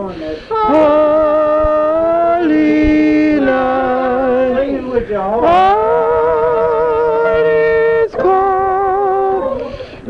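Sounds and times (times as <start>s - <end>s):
person singing a carol: 0.0s - 10.0s.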